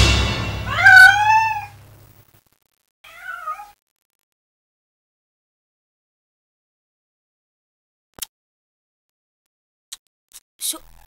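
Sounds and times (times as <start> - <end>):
cat meowing: 0.7 - 1.8, 3.1 - 3.8.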